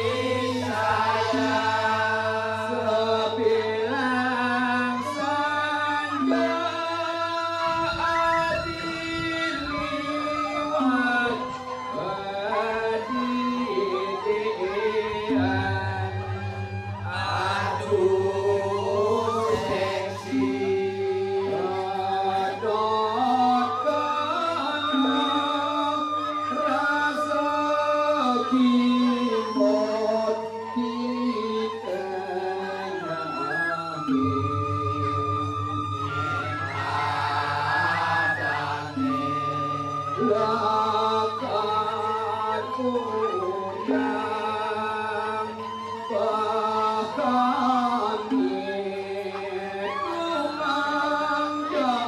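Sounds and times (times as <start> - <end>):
bamboo flute high line: 0.0 - 52.0
group accompaniment: 0.0 - 52.0
man singing sliding held notes: 0.0 - 52.0
low pulsing bass: 15.5 - 19.8, 34.1 - 37.5.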